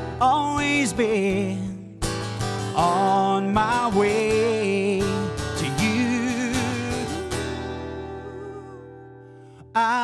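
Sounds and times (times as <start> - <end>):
acoustic guitar chord ringing: 0.0 - 10.0
person singing: 0.1 - 1.8, 2.8 - 10.0.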